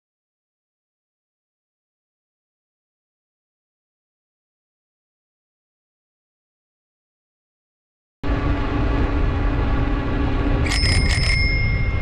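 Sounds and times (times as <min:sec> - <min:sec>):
bicycle bell ringing: 0:10.6 - 0:12.0.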